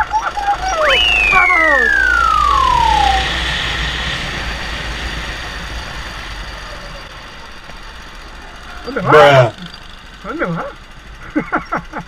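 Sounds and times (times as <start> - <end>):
high tone gliding downward: 0.0 - 10.9
kart engine: 0.0 - 12.0.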